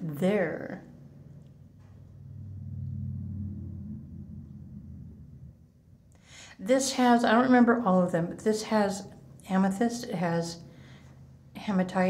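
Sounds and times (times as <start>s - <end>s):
low rumble: 1.4s - 6.4s.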